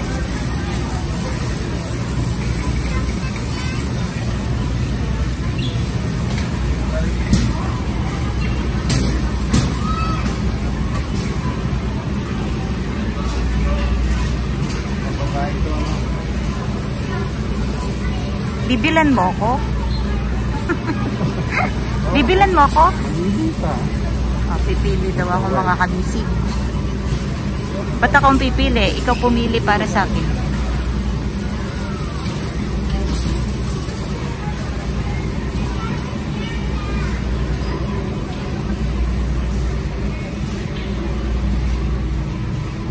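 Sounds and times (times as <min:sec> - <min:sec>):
faint indistinct voices: 0:00.0 - 0:42.9
shopping cart wheels rolling: 0:00.0 - 0:42.9.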